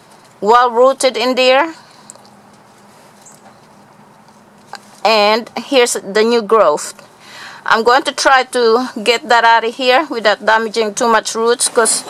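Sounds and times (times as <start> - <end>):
low hiss and hum: 0.0 - 12.0
fingers rustling in soil: 2.0 - 5.8.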